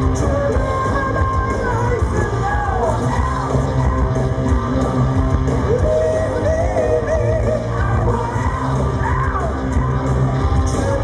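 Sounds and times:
heavy metal band playing live: 0:00.0 - 0:11.0.

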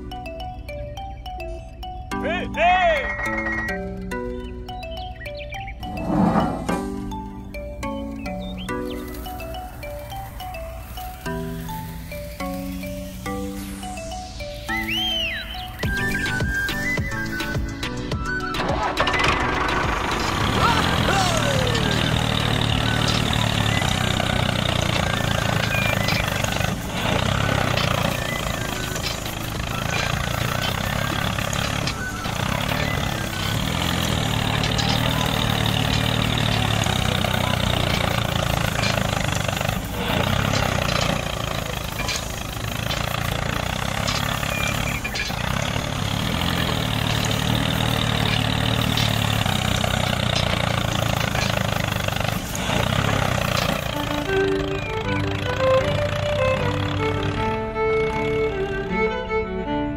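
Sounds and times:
toy tractor motor running: 0:18.3 - 0:59.8.

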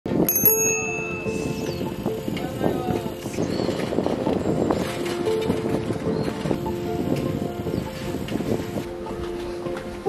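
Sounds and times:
bicycle bell ringing: 0:00.2 - 0:02.6.

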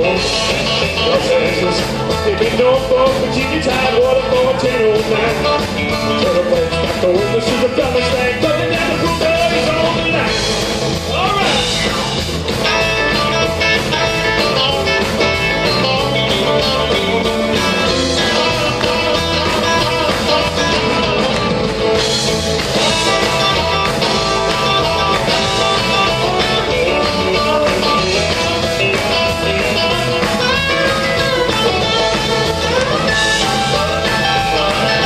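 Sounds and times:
electric guitar: 0:00.0 - 0:35.0
rock and roll band playing: 0:00.0 - 0:35.0.

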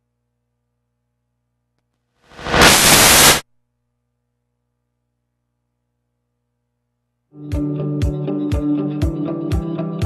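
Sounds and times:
white noise static: 0:02.3 - 0:03.4.

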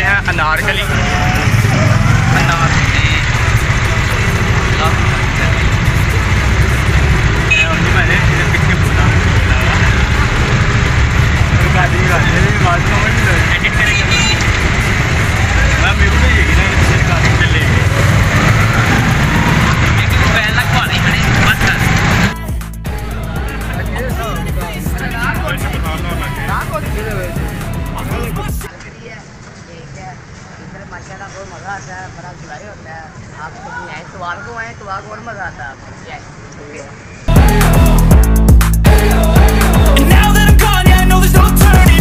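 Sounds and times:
men talking and laughing: 0:00.0 - 0:14.6, 0:15.2 - 0:28.7
auto-rickshaw engine running: 0:00.0 - 0:28.6
road rumble: 0:00.0 - 0:42.0.

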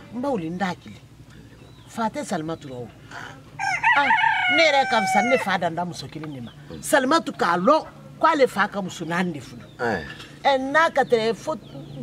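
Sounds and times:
woman talking: 0:00.0 - 0:01.0, 0:03.9 - 0:09.7, 0:10.4 - 0:12.0
rooster crowing: 0:03.6 - 0:05.6.

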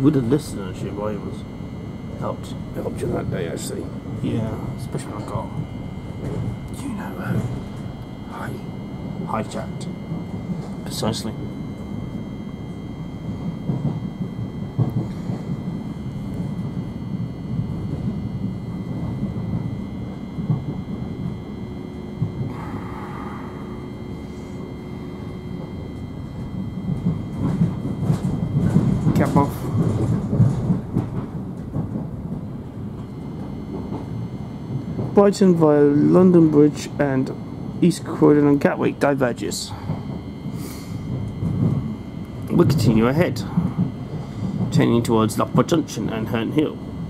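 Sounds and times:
train wheels rumbling on track: 0:00.0 - 0:47.0.

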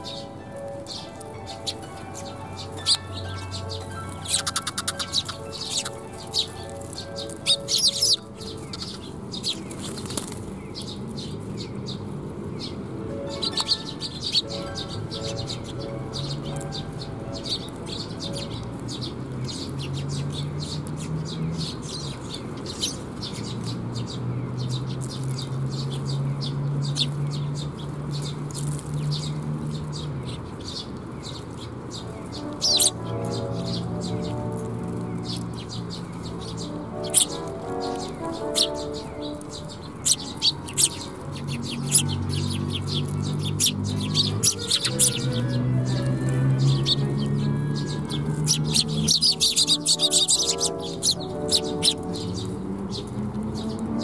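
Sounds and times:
sparrows chirping: 0:00.0 - 0:54.0
wings fluttering: 0:04.1 - 0:11.0.

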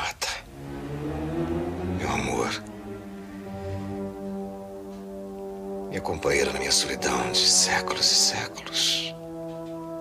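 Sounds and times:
sustained low musical chord: 0:00.4 - 0:10.0.

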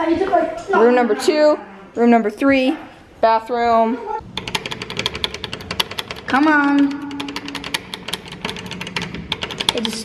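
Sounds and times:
rapid even ticking: 0:04.2 - 0:10.0.

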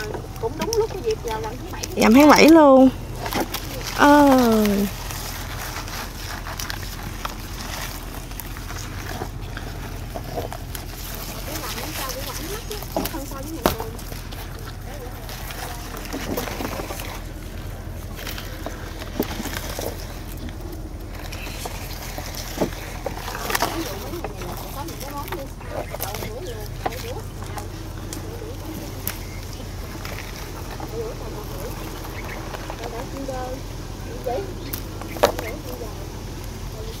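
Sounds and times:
bean pods snapping: 0:00.0 - 0:33.2, 0:34.6 - 0:35.8
leaves rustling: 0:00.0 - 0:37.0
steady low hum: 0:00.0 - 0:37.0.

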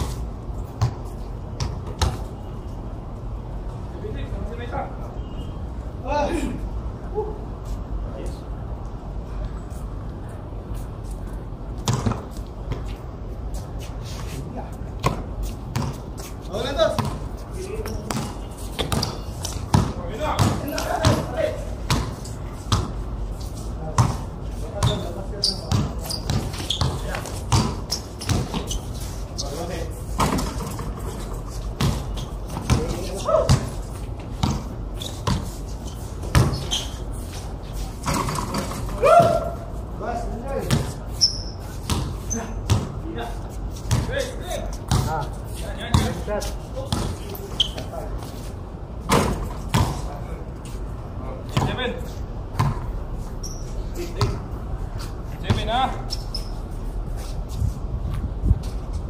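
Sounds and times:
basketball bouncing on concrete: 0:00.7 - 0:02.2, 0:11.8 - 0:12.8, 0:15.0 - 0:23.0, 0:23.8 - 0:28.8, 0:30.2 - 0:35.5, 0:36.2 - 0:36.9, 0:38.0 - 0:39.5, 0:40.6 - 0:48.0, 0:49.1 - 0:50.2, 0:51.5 - 0:51.8, 0:52.5 - 0:54.6, 0:55.4 - 0:56.0.

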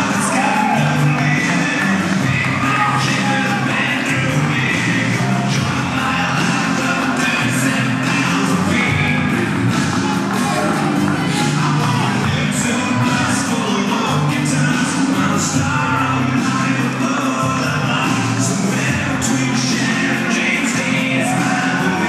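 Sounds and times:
entrance music with singing: 0:00.0 - 0:22.0.

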